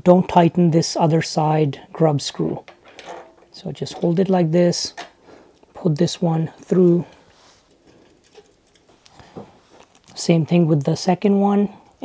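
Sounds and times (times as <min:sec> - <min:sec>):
faint handling of small screw: 0:06.7 - 0:10.2.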